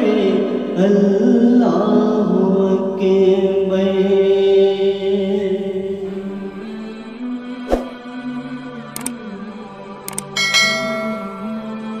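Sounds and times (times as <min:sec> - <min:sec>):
quick clicks: 0:09.0 - 0:09.2, 0:10.1 - 0:10.4
bright bell chime: 0:10.4 - 0:12.0.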